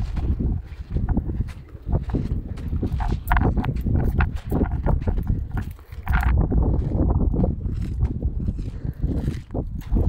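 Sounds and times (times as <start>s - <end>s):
footsteps on sand and rock: 0.0s - 10.0s
wind buffeting microphone: 0.0s - 10.0s.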